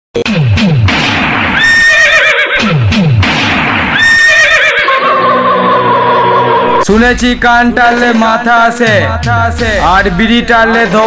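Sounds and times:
horse whinny sample: 1.6s - 2.8s, 3.9s - 6.8s
falling pitch sweeps: 4.9s - 6.9s.

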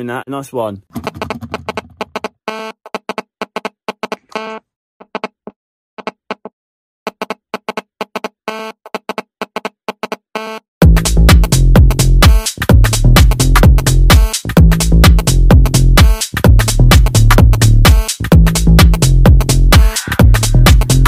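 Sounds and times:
heavy bass beat: 0.9s - 2.2s, 10.8s - 21.0s.

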